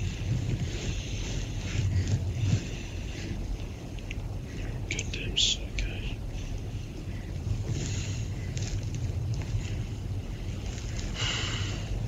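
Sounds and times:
muffled low rumbling: 0.0 - 12.0.

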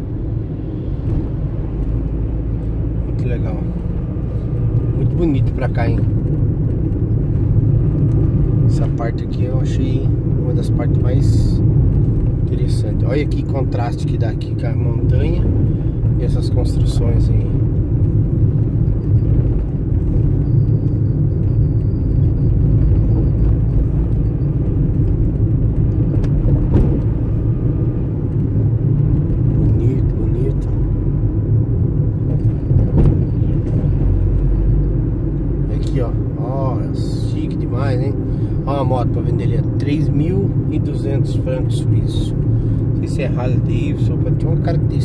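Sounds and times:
vehicle engine and tyre rumble: 0.0 - 45.0.

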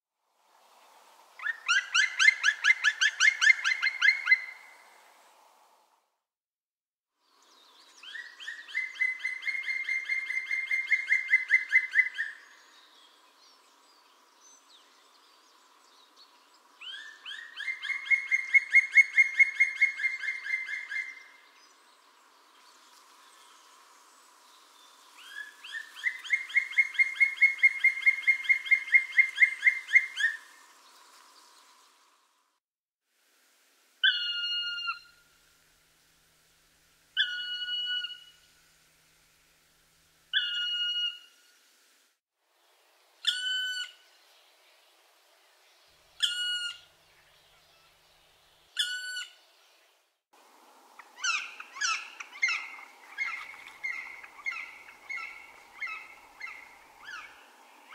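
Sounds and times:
woodpecker calling: 1.4 - 4.7, 8.1 - 12.4, 16.8 - 21.3, 25.2 - 30.4, 37.2 - 38.4, 40.3 - 41.3, 48.8 - 49.4, 51.0 - 57.9.

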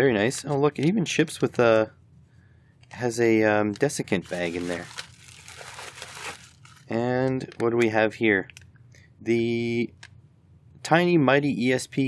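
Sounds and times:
plastic packaging crinkling: 3.6 - 8.7.

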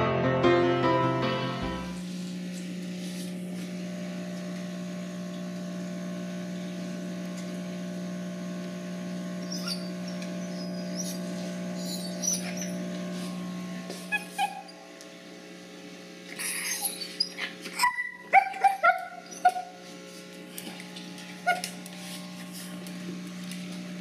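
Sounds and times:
dog whimpering and yipping: 9.5 - 11.2, 11.8 - 12.8, 14.1 - 14.8, 16.4 - 19.8, 21.4 - 21.7.

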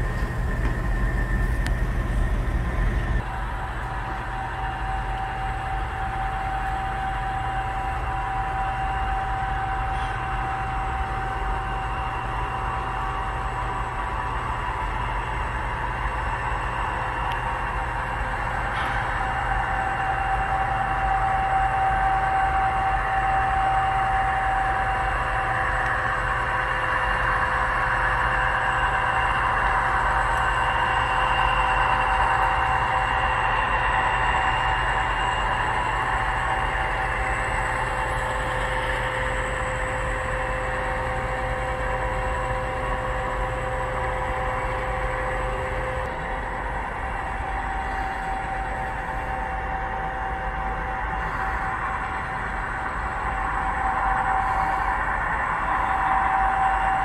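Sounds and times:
faint steady tones: 0.0 - 57.0
model train rolling on track: 0.0 - 57.0.

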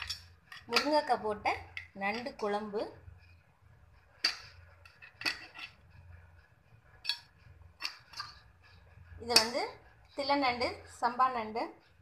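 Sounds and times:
ladle clinking against pot: 0.0 - 1.1, 4.2 - 5.8.

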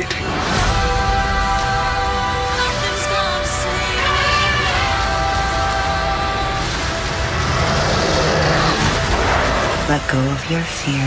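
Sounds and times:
rushing noise: 4.2 - 11.0.

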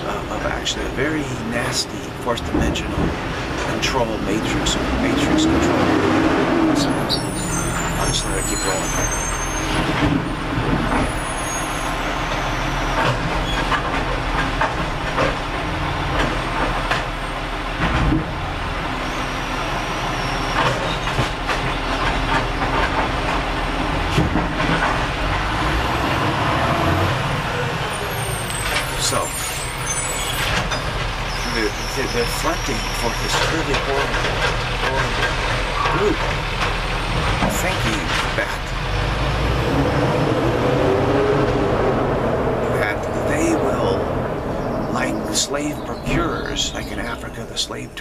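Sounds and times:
man talking: 0.0 - 5.9, 6.7 - 9.2, 28.9 - 29.7, 31.4 - 36.4, 37.4 - 38.8, 42.6 - 44.1, 44.9 - 48.0
vehicle noise rumble: 0.0 - 48.0.

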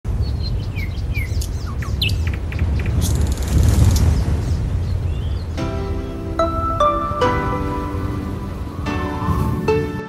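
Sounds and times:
birds chirping: 0.1 - 8.9.

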